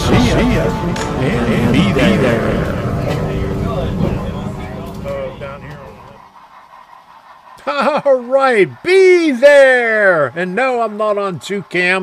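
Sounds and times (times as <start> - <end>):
man's voice: 0.0 - 5.7
people's voices: 0.0 - 6.3, 7.6 - 12.0
moving train rumble: 0.0 - 12.0.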